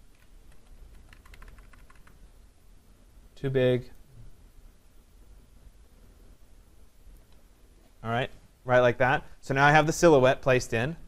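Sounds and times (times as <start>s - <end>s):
keyboard and mouse clicks: 0.1s - 2.2s.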